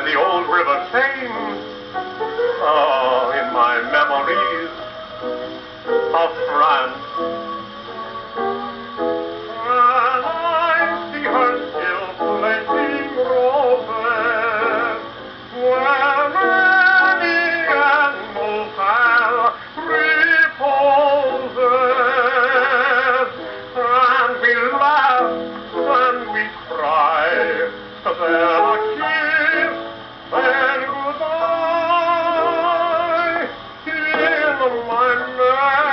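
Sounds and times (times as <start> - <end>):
old record of dance-band music: 0.0 - 35.9.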